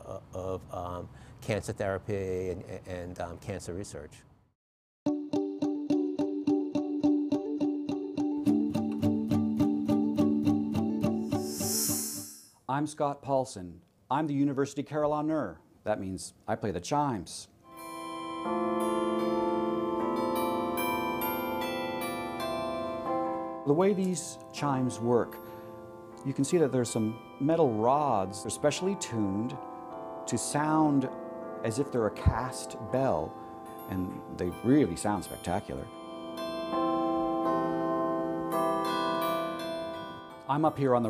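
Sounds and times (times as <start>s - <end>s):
carillon chimes playing melody: 17.8s - 24.0s, 25.3s - 31.3s, 32.9s - 41.0s
chime rods ringing: 33.7s - 36.9s.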